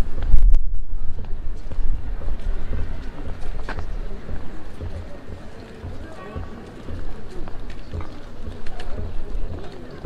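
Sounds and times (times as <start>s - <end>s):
low thuds: 0.0s - 9.6s
passers-by talking: 1.0s - 10.0s.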